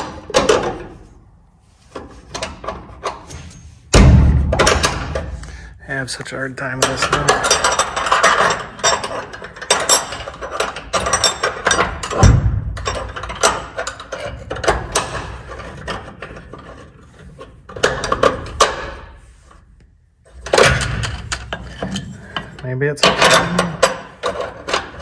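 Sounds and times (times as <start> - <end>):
heavy metal thunk: 3.9 - 5.5, 11.8 - 13.4
metal bracket clinking and rattling: 6.6 - 19.1.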